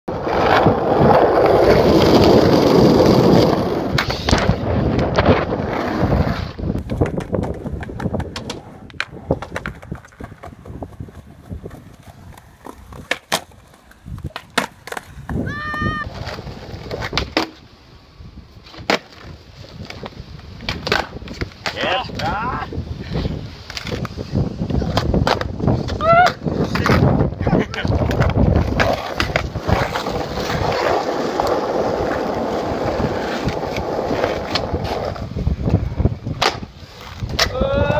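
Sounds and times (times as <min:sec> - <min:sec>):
skateboard clacks: 0:00.1 - 0:17.6, 0:18.7 - 0:22.3, 0:23.0 - 0:37.9
skateboard rolling over paving tiles: 0:00.1 - 0:17.7, 0:18.4 - 0:37.9
skateboard wheels rolling on asphalt: 0:00.1 - 0:37.9.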